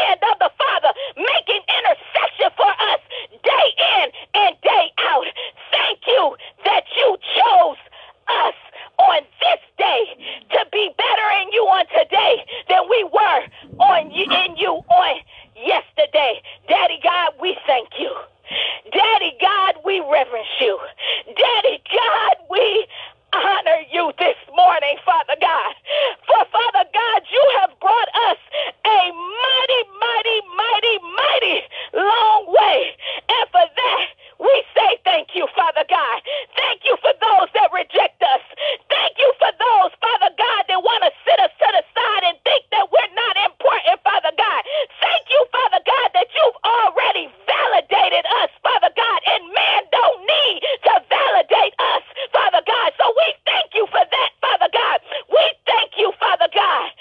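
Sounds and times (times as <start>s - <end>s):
person speaking over telephone: 9.8s - 18.2s.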